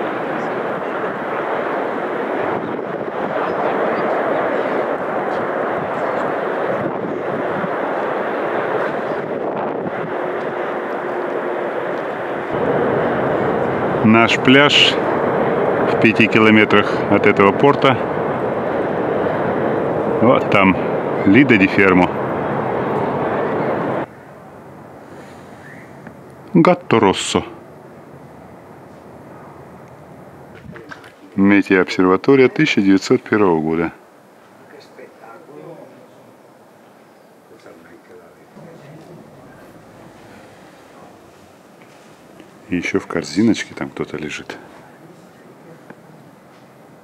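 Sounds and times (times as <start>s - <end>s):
steady rushing outdoor noise: 0.0s - 47.0s.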